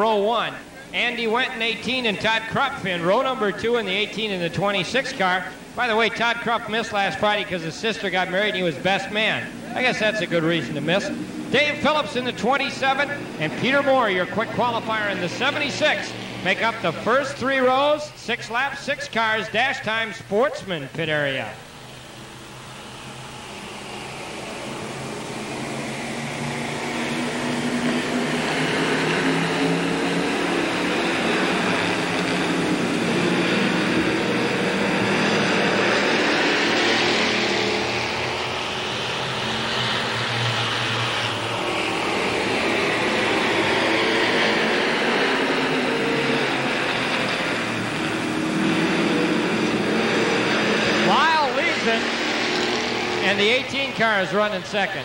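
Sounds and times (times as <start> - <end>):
racing car engines: 0.0 - 55.0.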